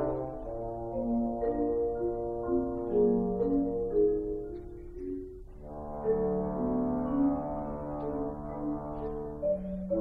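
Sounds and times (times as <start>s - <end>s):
marimba playing: 0.0s - 10.0s.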